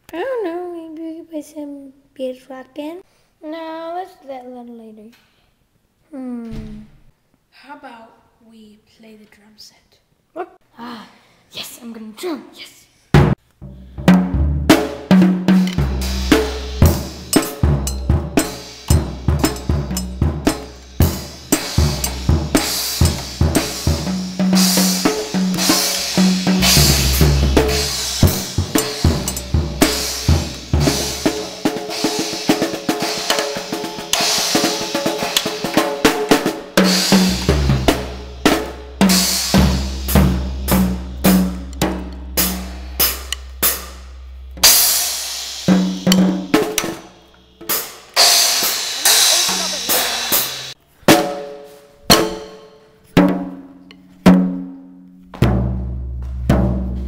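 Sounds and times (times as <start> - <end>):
bass drum: 13.2 - 33.5, 36.6 - 47.6, 55.4 - 57.0
snare drum hits: 14.2 - 51.4, 52.1 - 52.6
cymbal crashes: 14.7 - 51.5.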